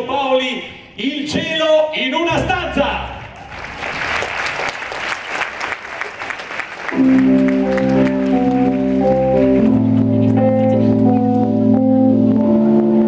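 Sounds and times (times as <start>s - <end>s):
audience applauding: 3.4s - 11.4s
sustained organ chords: 6.9s - 13.0s.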